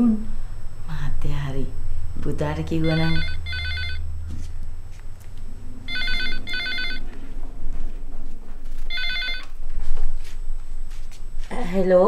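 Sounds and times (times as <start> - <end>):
telephone ringing with warbling trill: 2.8 - 4.0, 5.8 - 7.1, 8.9 - 9.5.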